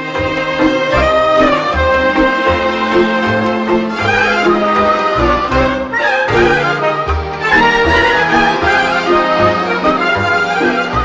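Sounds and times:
violin melody: 0:00.0 - 0:11.0.

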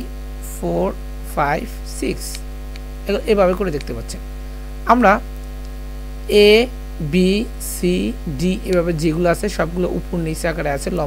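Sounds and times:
person speaking: 0:00.0 - 0:02.4, 0:03.0 - 0:05.3, 0:06.2 - 0:11.0
electrical mains hum: 0:00.0 - 0:11.0.

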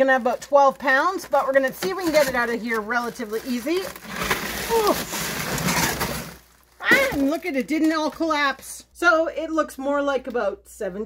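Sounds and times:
paper-wrapped packages rustling: 0:00.0 - 0:08.5
plastic crate scraping: 0:00.9 - 0:08.3.

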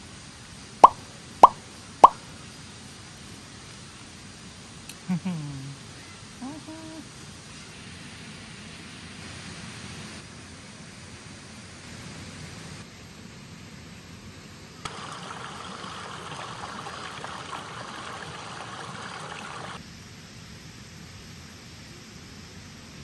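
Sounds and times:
chicken sizzling on grill: 0:14.9 - 0:19.8.

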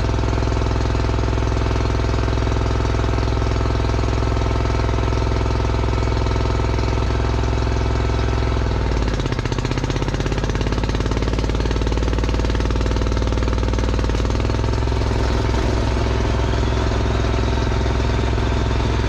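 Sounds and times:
dozer engine clattering: 0:08.6 - 0:19.0.

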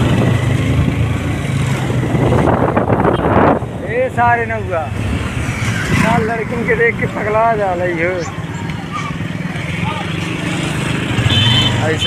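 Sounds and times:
street traffic: 0:00.0 - 0:12.0
horn toot: 0:11.2 - 0:12.0.

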